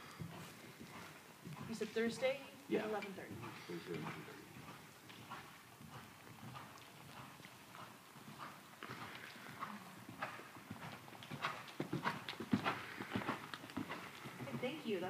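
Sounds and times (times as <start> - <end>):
horse trotting on sand: 0.0 - 15.0.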